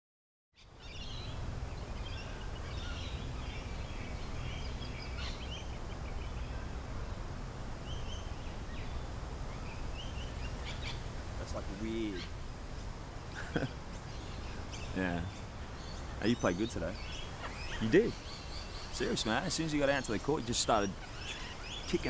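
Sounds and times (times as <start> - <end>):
birds chirping: 0.6 - 22.0
low outdoor rumble: 0.7 - 22.0.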